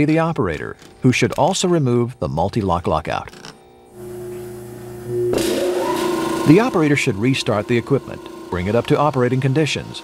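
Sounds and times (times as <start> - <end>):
electric fan motor humming: 3.6 - 10.0.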